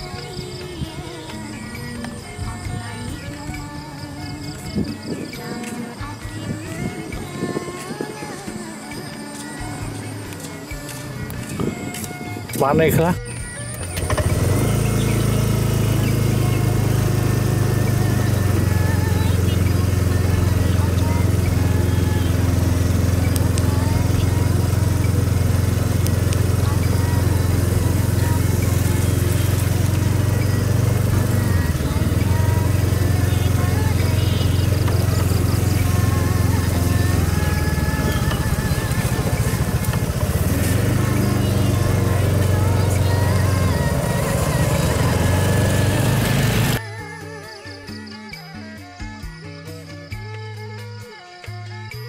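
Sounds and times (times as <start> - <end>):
motorcycle engine running: 0.0 - 46.8.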